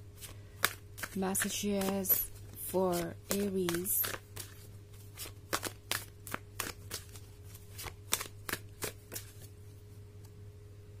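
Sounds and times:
cards shuffling: 0.2s - 9.6s.

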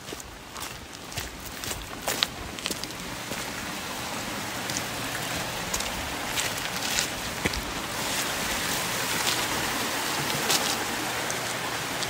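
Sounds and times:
rain on stone paving: 0.0s - 12.0s.

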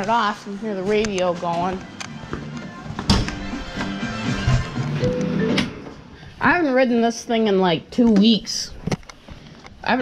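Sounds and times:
music from radio: 0.0s - 6.0s.

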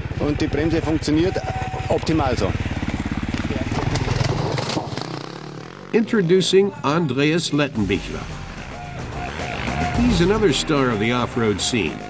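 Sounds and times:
motorcycle engine running: 0.0s - 6.2s, 7.8s - 12.0s.

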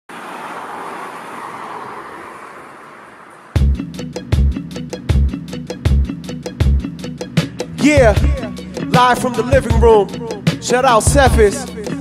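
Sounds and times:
road traffic rush: 0.1s - 12.0s.

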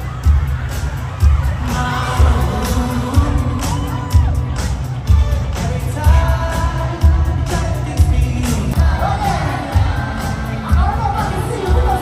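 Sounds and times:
crowd cheering and shouting: 0.0s - 12.0s
loud live music with heavy bass: 0.0s - 12.0s.

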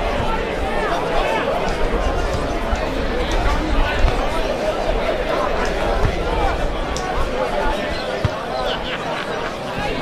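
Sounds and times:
players and spectators calling out: 0.0s - 10.0s.

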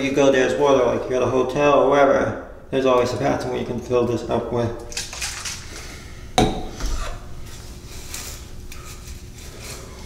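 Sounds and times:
bottle handling knocks: 6.4s - 6.7s.

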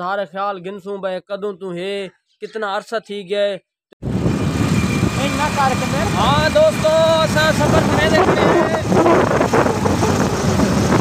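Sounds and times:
man talking: 0.0s - 3.6s, 5.2s - 9.0s
motorcycle engine running: 4.0s - 11.0s
wind rumble on microphone: 4.0s - 11.0s.

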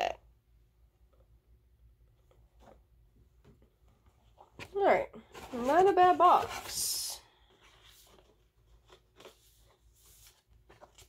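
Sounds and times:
paper sheet rustling: 4.4s - 11.0s.

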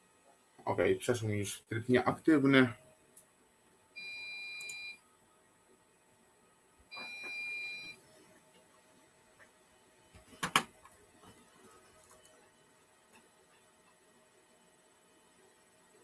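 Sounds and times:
buzzer beeps: 4.0s - 5.0s, 6.9s - 8.0s.

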